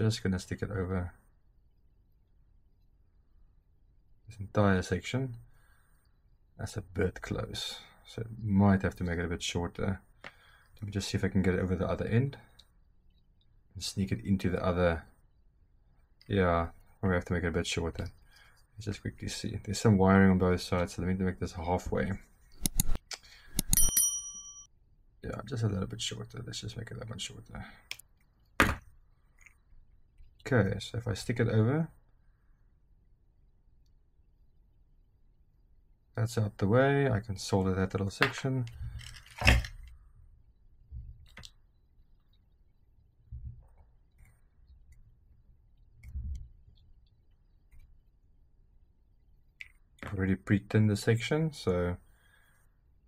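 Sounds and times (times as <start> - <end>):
bell ding: 23.6 - 24.7.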